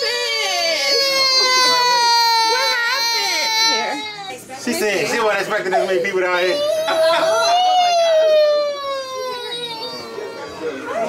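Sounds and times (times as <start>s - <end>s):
toddler crying: 0.0s - 4.4s, 5.6s - 11.0s.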